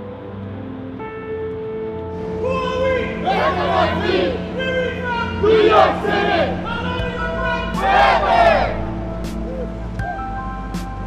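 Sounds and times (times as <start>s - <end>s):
soft music bed: 0.0s - 11.0s
group shouting a team chant: 2.4s - 8.9s.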